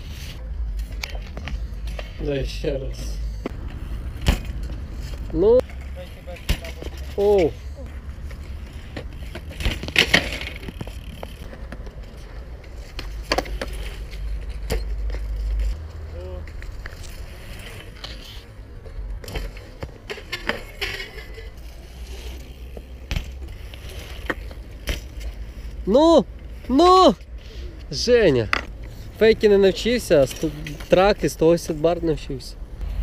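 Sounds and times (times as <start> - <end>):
tyres rolling on concrete: 0.7 - 32.7
bike clacks and knocks: 3.0 - 18.0, 18.8 - 25.4.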